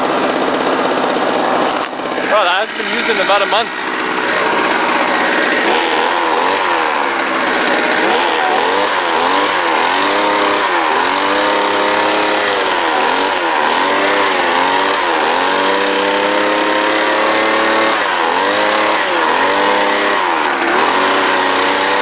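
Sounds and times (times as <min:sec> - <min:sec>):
leaf blower engine revving: 0:00.0 - 0:22.0.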